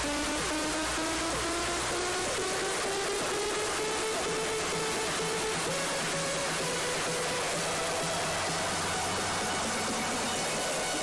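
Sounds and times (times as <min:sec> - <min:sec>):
dance music over loudspeakers: 0:00.0 - 0:11.0
steady hiss: 0:00.0 - 0:11.0.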